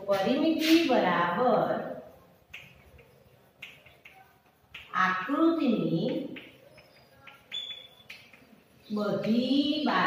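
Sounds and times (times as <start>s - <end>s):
chalk tapping and scraping: 0.0s - 10.0s
high chalk squeak: 6.4s - 8.6s.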